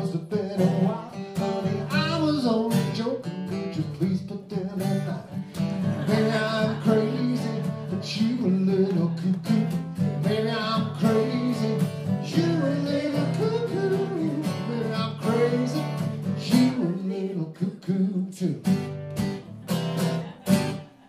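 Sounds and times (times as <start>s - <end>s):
acoustic guitars strumming: 0.0s - 21.0s.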